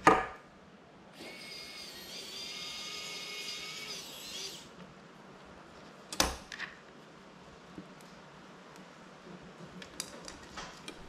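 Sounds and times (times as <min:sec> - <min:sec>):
small electric motor whining: 0:01.2 - 0:04.7.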